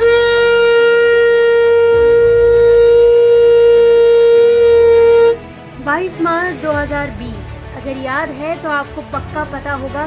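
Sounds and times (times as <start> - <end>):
conch shell blown: 0.0 - 5.6.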